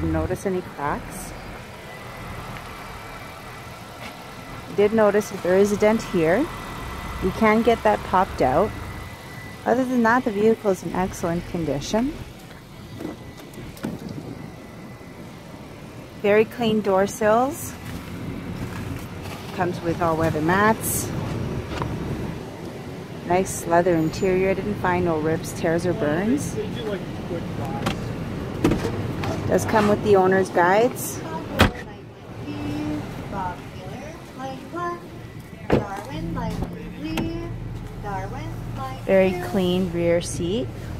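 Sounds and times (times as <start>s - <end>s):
low outdoor background noise: 0.0s - 40.9s.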